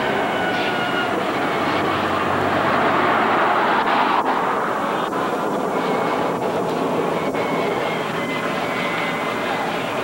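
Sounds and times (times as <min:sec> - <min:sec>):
car road and engine noise: 0:00.0 - 0:10.0.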